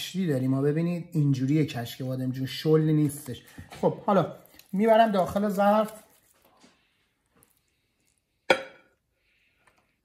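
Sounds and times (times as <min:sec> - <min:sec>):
faint handling sounds: 0:03.0 - 0:08.4
frying pan knock ringing: 0:08.5 - 0:08.9.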